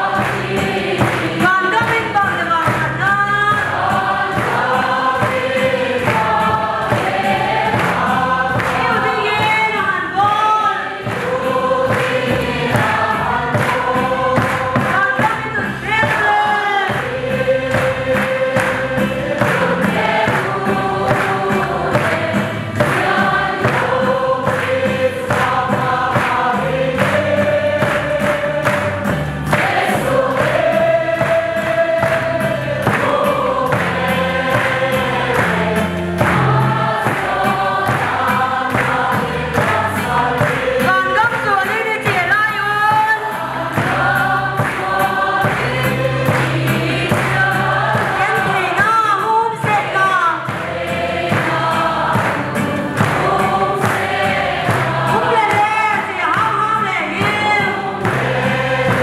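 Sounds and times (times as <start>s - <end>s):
congregation singing a hymn: 0.0s - 59.0s
hand-clapping on a beat: 0.0s - 59.0s.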